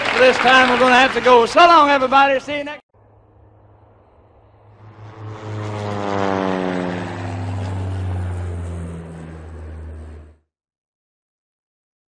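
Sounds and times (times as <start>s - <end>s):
propeller airplane flying by: 2.9s - 10.5s.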